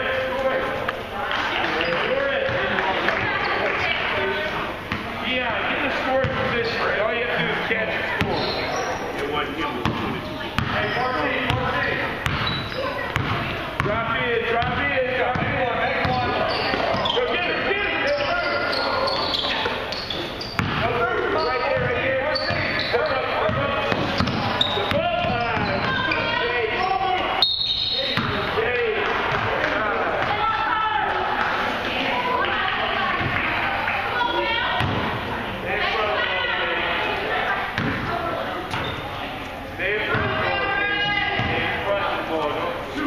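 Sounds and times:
overlapping voices in a gym: 0.0s - 43.0s
basketball bouncing on wooden floor: 11.5s - 14.0s, 14.6s - 17.1s, 20.6s - 20.9s, 21.8s - 22.7s, 23.4s - 26.0s, 28.2s - 28.4s.

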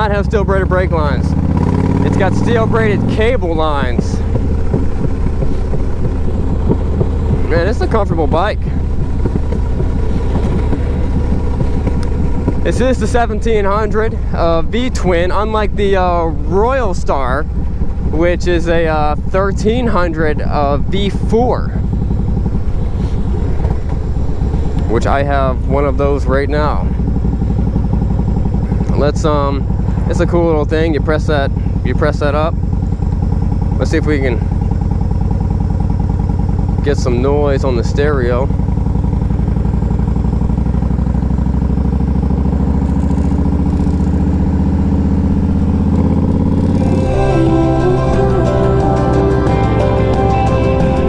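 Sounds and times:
man's voice: 0.0s - 1.3s, 2.0s - 4.3s, 7.4s - 8.9s, 12.6s - 17.5s, 18.1s - 21.8s, 24.9s - 26.9s, 28.9s - 32.5s, 46.8s - 51.0s
motorcycle engine cruising: 0.0s - 51.0s.

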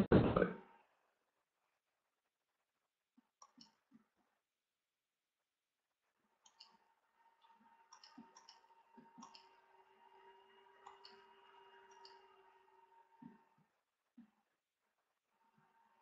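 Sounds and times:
faint clicks: 6.4s - 6.8s, 7.4s - 9.6s.

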